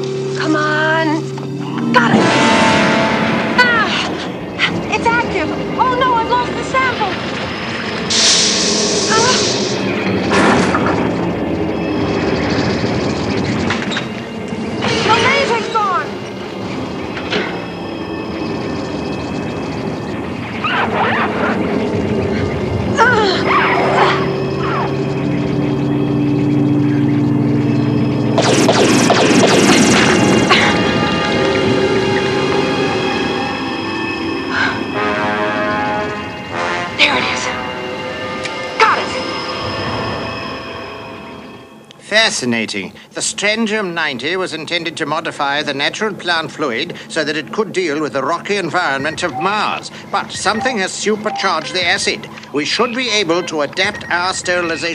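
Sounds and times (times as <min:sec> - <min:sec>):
loud noisy stretch: 0:01.6 - 0:34.8
cartoon music with held notes: 0:49.0 - 0:52.2.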